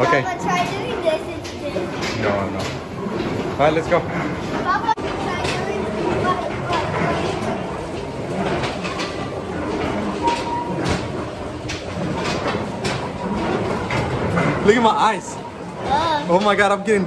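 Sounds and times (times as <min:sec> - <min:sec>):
rotating drum mechanical noise: 0:00.0 - 0:17.0.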